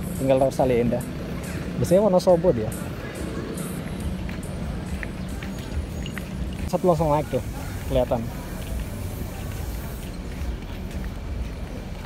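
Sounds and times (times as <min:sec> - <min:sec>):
diesel bus engines idling: 0:00.0 - 0:12.0.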